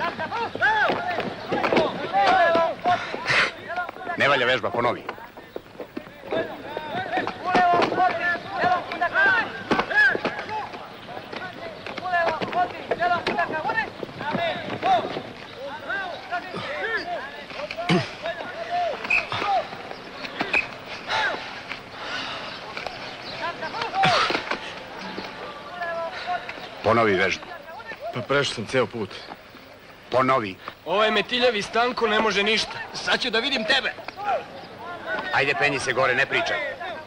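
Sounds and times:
men shouting: 0:06.2 - 0:22.7, 0:23.3 - 0:28.2.

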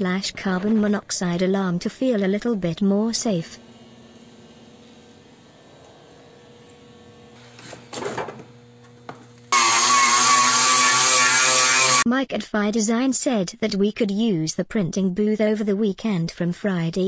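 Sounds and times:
electric power tool motor whining: 0:00.3 - 0:12.0.

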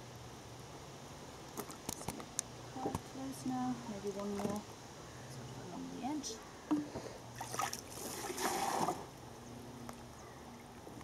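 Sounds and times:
water splashing and trickling: 0:07.3 - 0:09.2.

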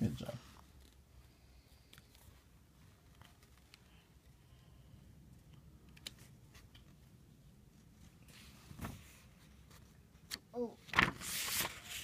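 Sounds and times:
page rustling and flapping: 0:08.3 - 0:12.0.

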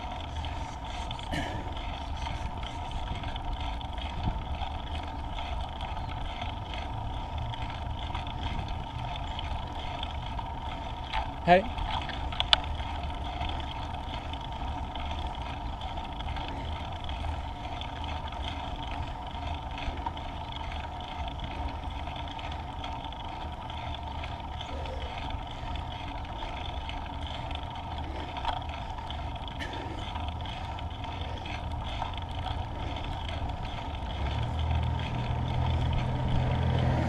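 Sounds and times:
scooter wheels rumbling on road: 0:00.0 - 0:37.0.

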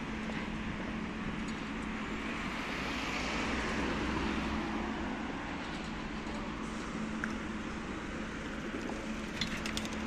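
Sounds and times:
low hum of street traffic: 0:00.0 - 0:10.0.

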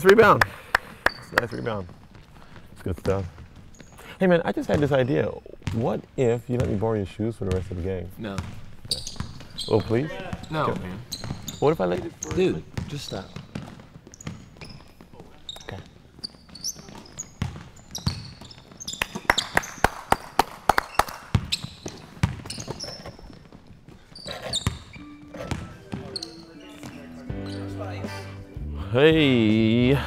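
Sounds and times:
sneakers squeaking on court: 0:01.0 - 0:28.2
basketball bouncing on hardwood: 0:05.6 - 0:05.8, 0:06.5 - 0:15.1, 0:15.7 - 0:19.6, 0:21.3 - 0:26.2
background music: 0:24.9 - 0:30.0.

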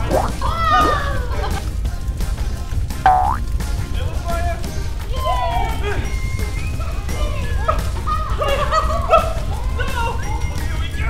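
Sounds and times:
cartoon boing sound effect: 0:00.0 - 0:01.0, 0:03.1 - 0:03.4
background music with steady beat: 0:00.0 - 0:11.0.

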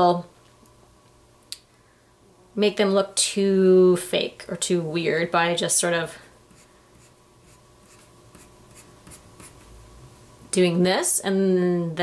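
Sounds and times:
pencil scratching on paper: 0:06.5 - 0:09.7.

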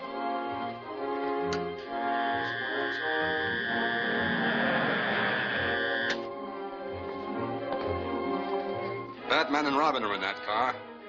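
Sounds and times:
film music: 0:00.0 - 0:11.0
machine electric hum: 0:02.0 - 0:06.2.

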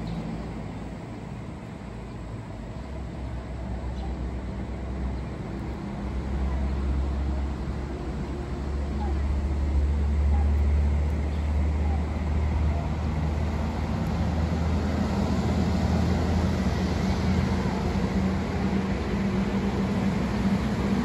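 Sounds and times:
street traffic rumble: 0:00.0 - 0:21.0.

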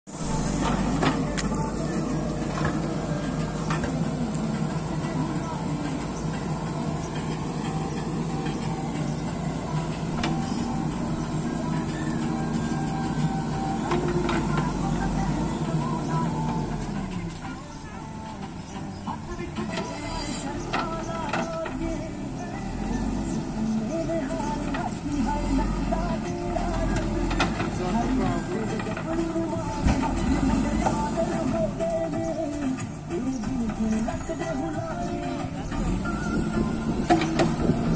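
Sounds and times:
diesel engine under load: 0:00.0 - 0:37.9.

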